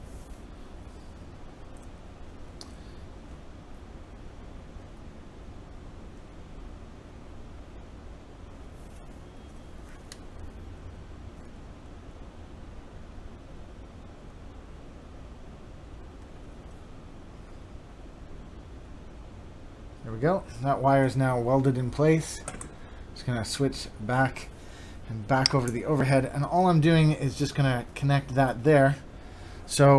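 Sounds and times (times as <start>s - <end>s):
room hum and hiss: 0.0s - 29.9s.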